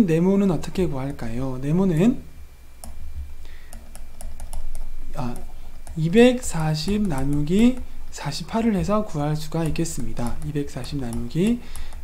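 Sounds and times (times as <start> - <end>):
low steady hum: 0.0 - 12.0
stylus tapping pen tablet: 2.8 - 3.1, 3.7 - 8.1, 8.7 - 12.0.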